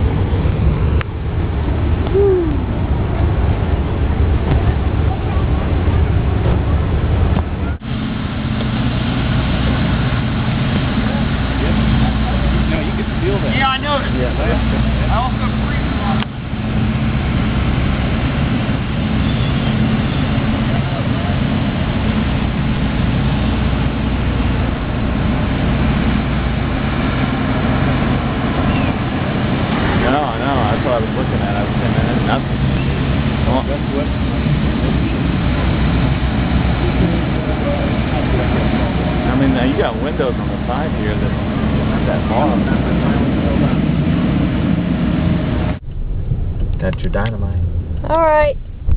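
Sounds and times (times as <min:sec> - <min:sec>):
low mechanical hum: 0:00.0 - 0:48.9.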